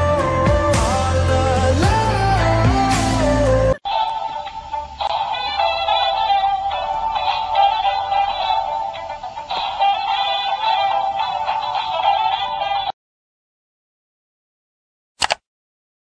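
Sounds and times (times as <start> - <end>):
electronic toy tune with synthetic singing: 3.8 - 13.0.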